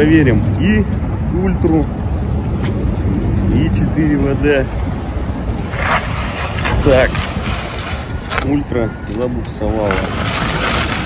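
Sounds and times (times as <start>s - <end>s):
street noise: 0.0s - 11.0s
wind rumble on microphone: 0.2s - 8.8s.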